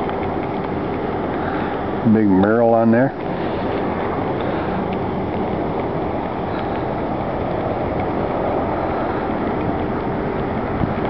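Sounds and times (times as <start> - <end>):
engine running steadily: 0.0 - 11.0
faint steady hum: 0.0 - 11.0.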